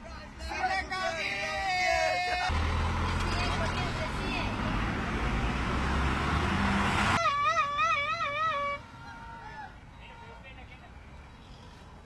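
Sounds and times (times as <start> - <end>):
roadside traffic: 0.0 - 12.0.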